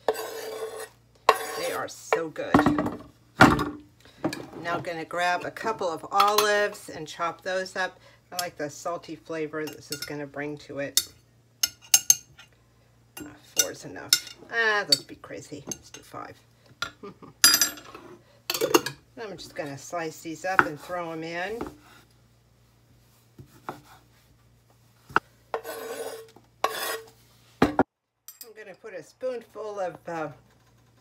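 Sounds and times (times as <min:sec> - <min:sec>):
scraping on wooden board: 0:25.6 - 0:27.2.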